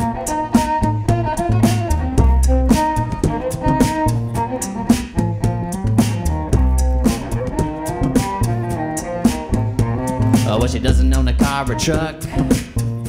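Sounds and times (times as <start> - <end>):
beatboxed beat: 0.0 - 13.0
bowed cello: 0.0 - 13.0
low bass figure: 0.0 - 13.0.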